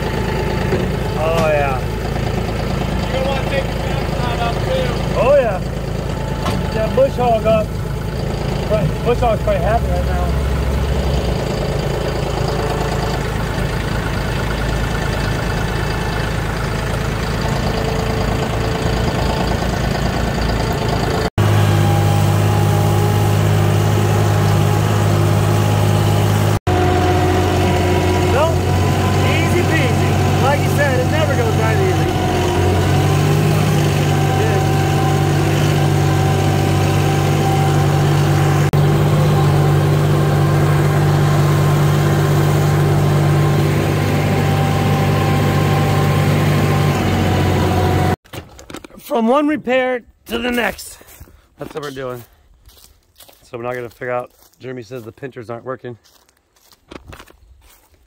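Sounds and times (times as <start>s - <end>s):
tractor diesel engine running: 0.0s - 49.4s.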